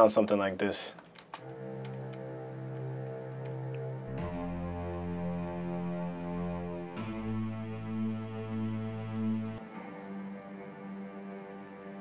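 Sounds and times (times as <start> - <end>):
synthesized strings holding notes: 1.4 - 12.0.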